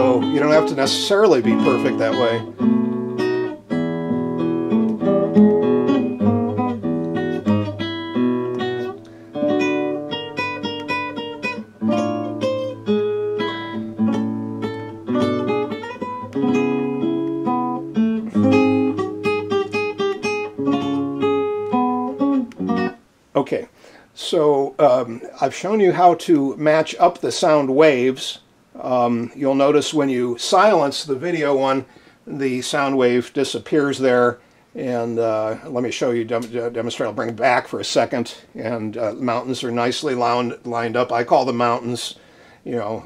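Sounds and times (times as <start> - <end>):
classical guitar fingerstyle: 0.0 - 23.0.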